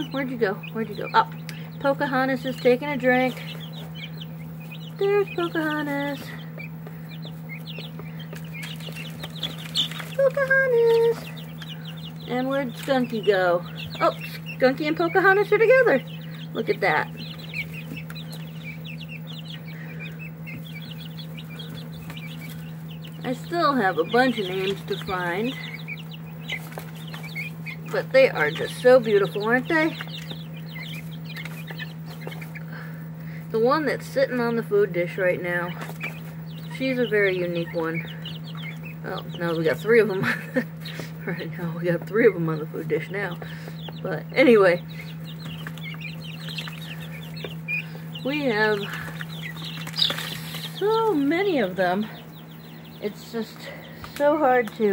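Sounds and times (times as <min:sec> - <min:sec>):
chicks peeping: 0:00.0 - 0:54.9
steady low hum: 0:00.0 - 0:54.9.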